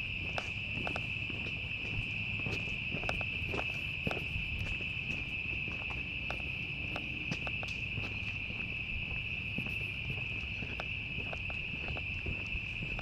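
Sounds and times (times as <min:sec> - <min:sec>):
cicadas buzzing: 0:00.0 - 0:13.0.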